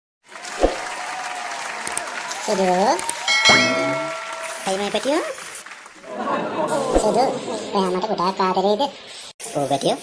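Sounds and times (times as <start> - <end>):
applause: 0.2 - 6.2.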